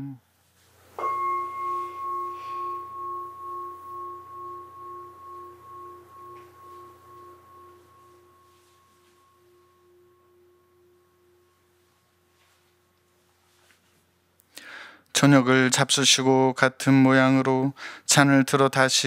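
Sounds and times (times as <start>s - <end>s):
bell ringing: 1.0s - 12.0s.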